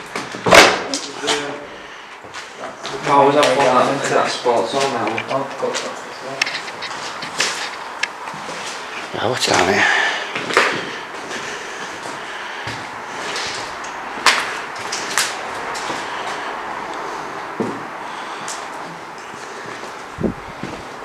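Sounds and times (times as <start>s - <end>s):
footsteps crunching over debris: 2.2s - 16.5s.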